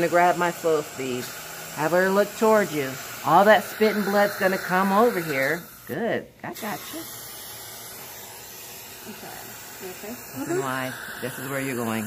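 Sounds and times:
dental suction hissing: 0:00.0 - 0:12.0.

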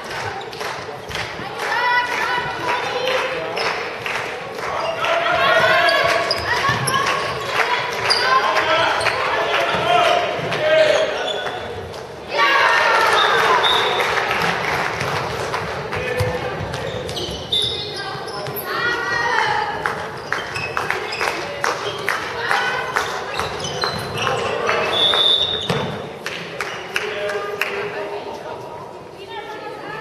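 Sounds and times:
players' voices: 0:00.0 - 0:30.0
sneakers squeaking: 0:04.8 - 0:12.2, 0:16.0 - 0:22.2, 0:23.0 - 0:26.1.

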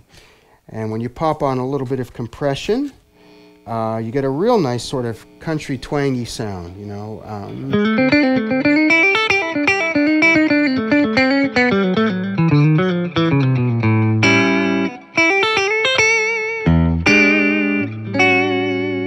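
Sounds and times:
electric guitar through amp: 0:03.9 - 0:19.0.

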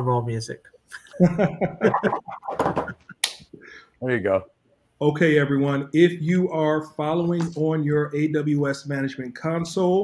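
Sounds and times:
person laughing: 0:01.0 - 0:03.3.

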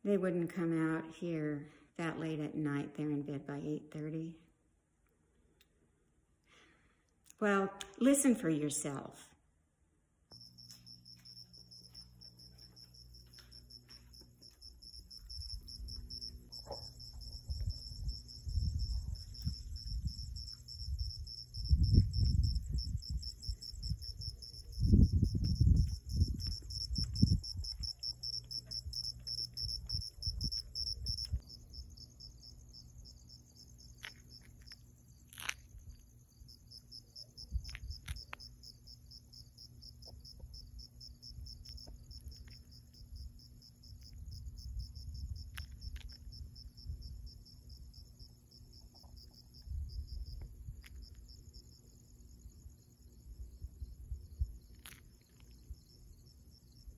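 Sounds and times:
crickets chirping: 0:10.3 - 0:56.9.

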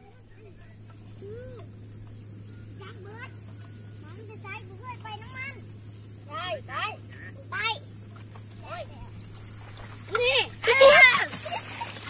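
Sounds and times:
steady low hum: 0:00.0 - 0:12.0
young children calling out: 0:10.1 - 0:11.7.

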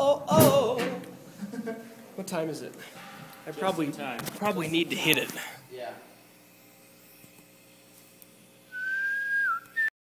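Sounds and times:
person whistling high note: 0:08.7 - 0:09.9.

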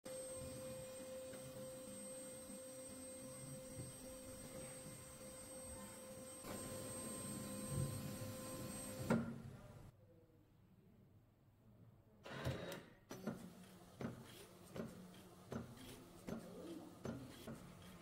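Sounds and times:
printer mechanism running: 0:00.1 - 0:09.6, 0:12.3 - 0:18.0
printer electrical hum: 0:00.1 - 0:09.9, 0:12.3 - 0:18.0.

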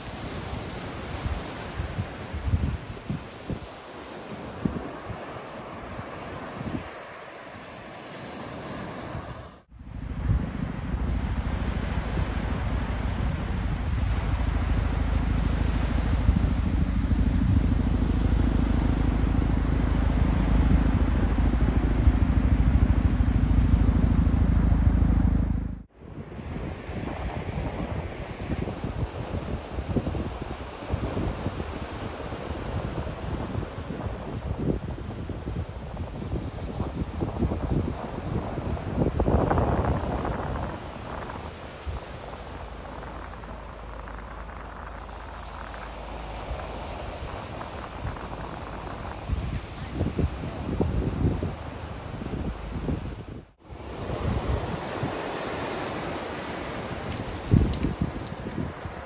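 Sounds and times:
surf: 0:00.0 - 0:59.0
wind on microphone: 0:00.0 - 0:59.0
helicopter rotor drone: 0:09.8 - 0:26.5.

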